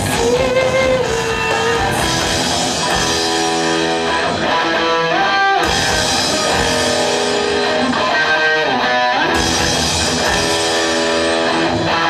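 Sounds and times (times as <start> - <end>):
electric guitar lead: 0.0 - 12.0
rock backing band: 0.0 - 12.0.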